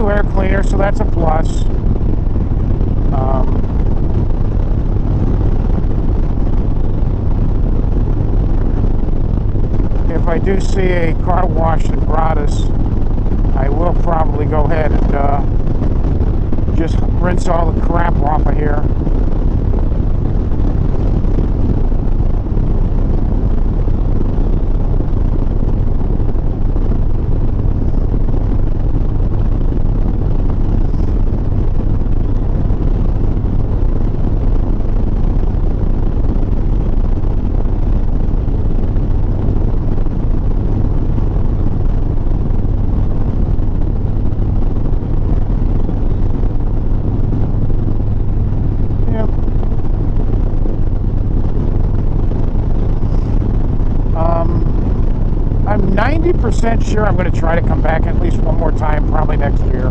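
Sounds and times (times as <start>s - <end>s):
motorcycle engine droning: 0.0s - 59.9s
wind noise on microphone: 0.0s - 59.9s.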